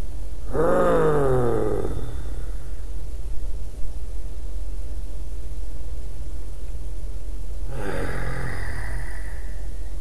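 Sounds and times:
man moaning: 0.5 - 2.8, 7.7 - 9.7.

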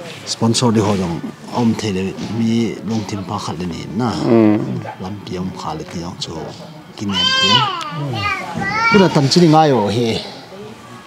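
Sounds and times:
child calling out: 7.2 - 9.1.

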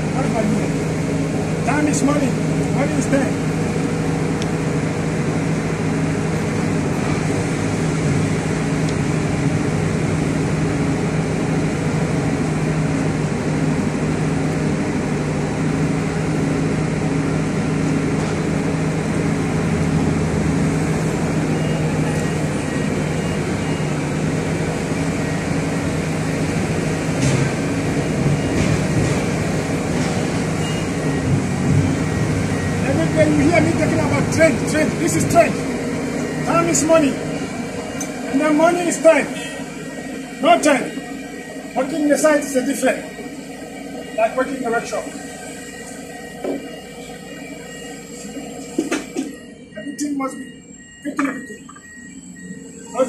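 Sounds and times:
large engine running steadily: 0.0 - 53.0.

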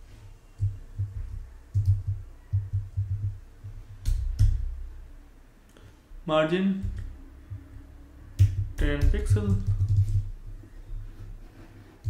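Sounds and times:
typing on computer keyboard: 0.6 - 3.4, 8.4 - 10.4.

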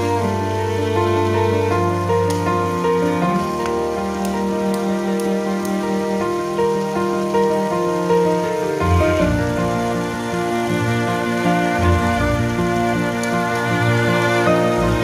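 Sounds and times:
slow soft background music: 0.0 - 15.0
food frying in a pan: 2.2 - 15.0.

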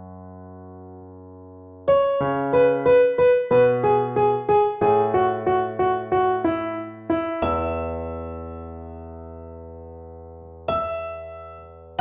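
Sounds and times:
slow piano melody: 0.0 - 12.0.

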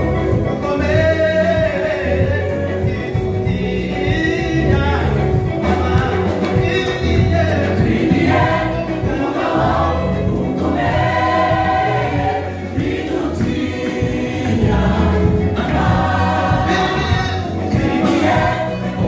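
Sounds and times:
bass line: 0.0 - 19.0
group singing gospel: 0.0 - 19.0
keyboard: 0.0 - 19.0.

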